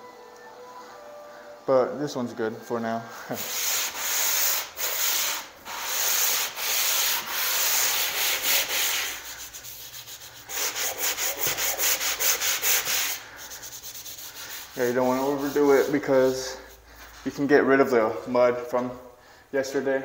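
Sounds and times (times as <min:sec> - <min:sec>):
sanding block scraping wall: 0:03.2 - 0:17.6.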